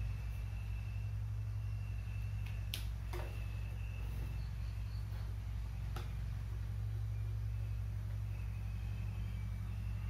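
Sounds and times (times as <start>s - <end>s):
faint high whine: 0.0s - 10.0s
low hum: 0.0s - 10.0s.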